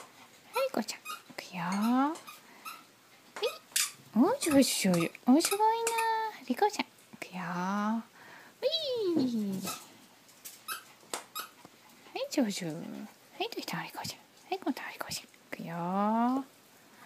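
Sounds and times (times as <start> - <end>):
woman calling: 8.6 - 9.7.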